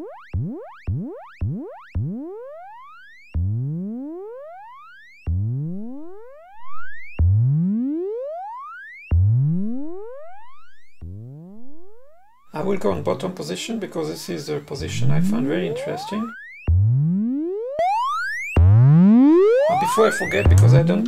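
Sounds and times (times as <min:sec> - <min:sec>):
synthesizer tone sweeping up: 0:00.0 - 0:21.0.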